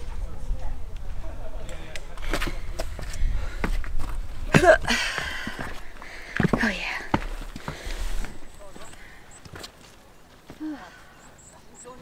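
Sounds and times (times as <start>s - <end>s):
boots stepping on rock and stones: 2.2s - 10.6s.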